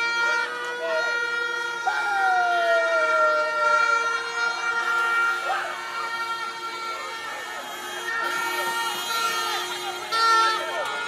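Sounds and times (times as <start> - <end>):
people shouting: 0.0 - 11.0.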